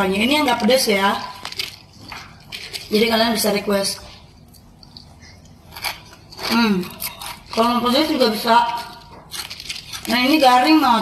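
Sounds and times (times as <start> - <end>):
chewing crunchy snack: 1.2 - 11.0.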